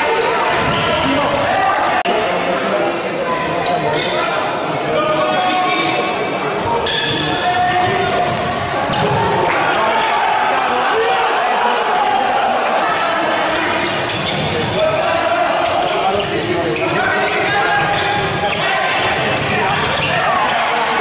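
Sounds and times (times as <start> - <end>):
shouts and chatter: 0.0 - 21.0.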